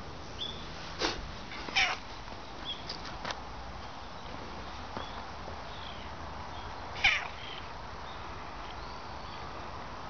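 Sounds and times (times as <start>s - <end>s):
cat meowing: 1.6s - 2.0s, 7.0s - 7.4s.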